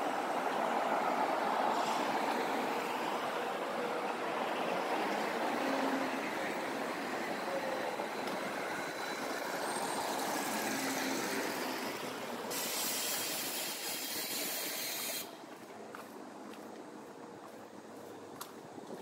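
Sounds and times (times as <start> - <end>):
passing road traffic: 0.0 - 19.0.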